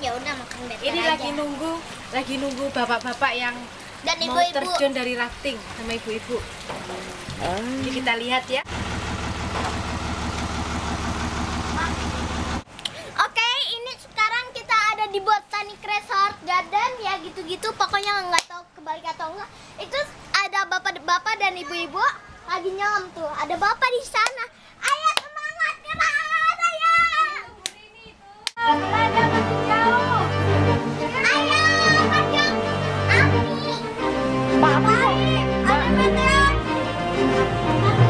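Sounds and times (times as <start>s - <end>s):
motor engine running: 8.7s - 12.6s.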